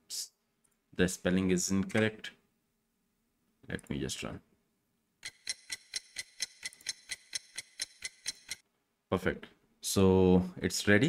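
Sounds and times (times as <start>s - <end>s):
ticking clock: 5.2s - 8.6s.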